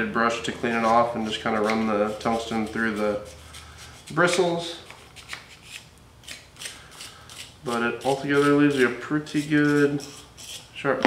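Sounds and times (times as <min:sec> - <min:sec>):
brush bristles scratching: 0:00.6 - 0:10.7.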